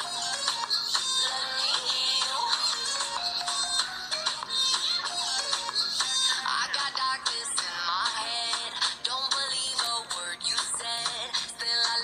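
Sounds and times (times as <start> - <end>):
pop song with vocals: 0.0 - 12.0.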